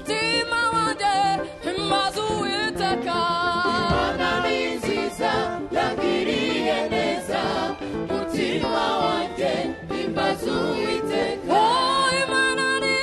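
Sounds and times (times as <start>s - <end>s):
group singing gospel in harmony: 2.7s - 13.0s.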